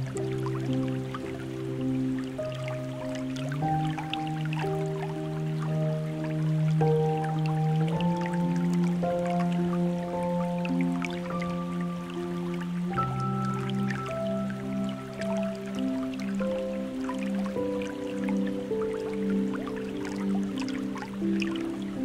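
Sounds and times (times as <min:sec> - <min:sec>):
soft ambient music: 0:00.0 - 0:22.0.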